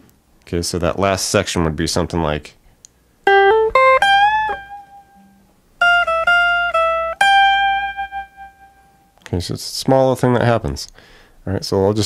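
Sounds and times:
electric guitar lead line: 3.3s - 9.1s.

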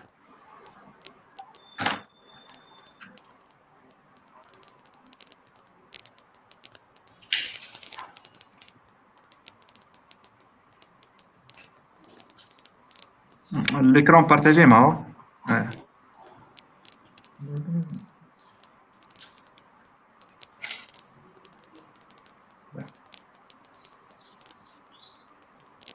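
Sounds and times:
computer keys and mouse clicks: 0.0s - 14.0s, 15.5s - 25.9s.

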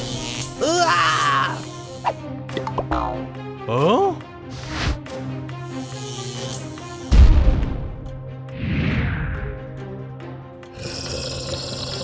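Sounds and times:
rough hissing layer: 0.0s - 2.2s, 5.6s - 7.0s.

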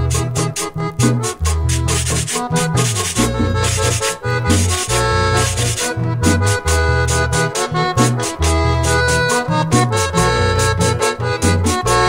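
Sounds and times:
accordion melody: 0.0s - 12.0s
bass: 0.0s - 12.0s
rasping scraper strokes: 1.7s - 6.6s.

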